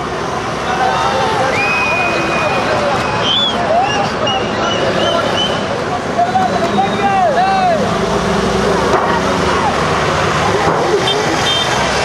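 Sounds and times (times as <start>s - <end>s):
truck engines running: 0.0s - 12.0s
people shouting: 0.6s - 8.0s.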